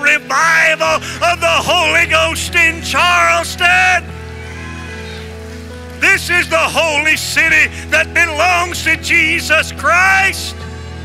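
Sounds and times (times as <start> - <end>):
soft worship band music: 0.0 - 11.0.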